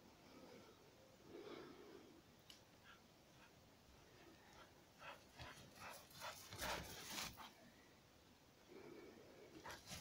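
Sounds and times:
dog footfalls crunching in snow: 5.4s - 7.5s.

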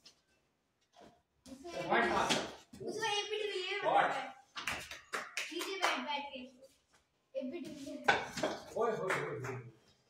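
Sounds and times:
people talking: 5.5s - 6.6s, 7.4s - 9.6s.

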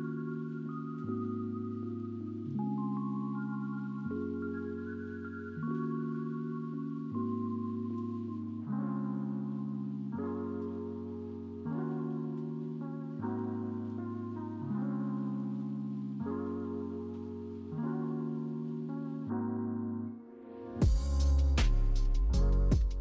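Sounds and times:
soft held chords: 0.0s - 23.0s.

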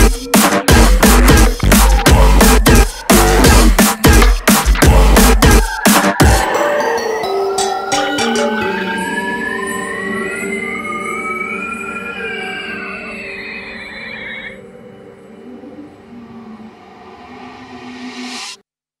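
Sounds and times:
synth tones sliding upward: 1.8s - 18.6s.

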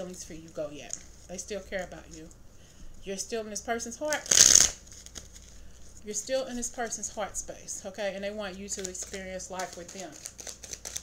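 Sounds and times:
cards shuffling: 4.1s - 5.8s, 8.6s - 11.0s.

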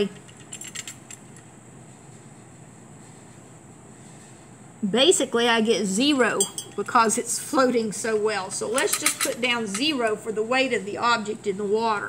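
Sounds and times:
metallic clicks and rattles: 0.0s - 1.5s, 8.7s - 10.0s
faint room hiss: 0.0s - 12.0s.

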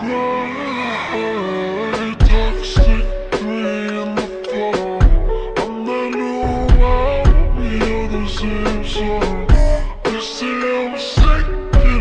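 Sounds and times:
slowed electronic dance music: 0.0s - 12.0s.

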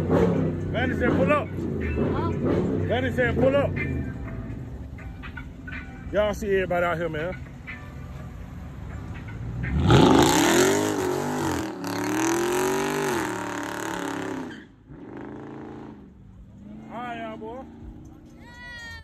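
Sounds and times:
car engine revving: 0.0s - 4.6s, 8.5s - 18.4s.

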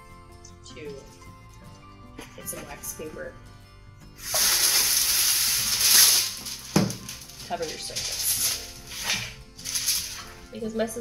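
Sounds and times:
wax paper pulled off roll: 4.2s - 10.5s.

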